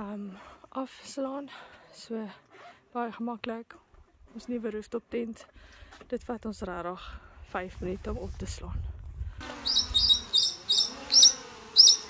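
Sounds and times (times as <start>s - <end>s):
bird chirping: 9.6s - 12.0s.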